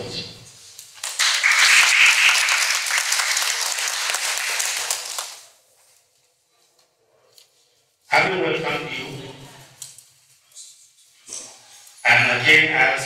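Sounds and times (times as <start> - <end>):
audience applauding: 1.0 - 5.6.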